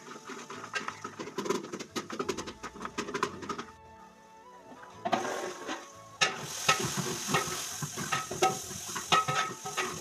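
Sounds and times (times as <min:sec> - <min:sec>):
onions frying in hot oil: 0:05.1 - 0:10.0
spoon clinking against pot: 0:08.1 - 0:10.0.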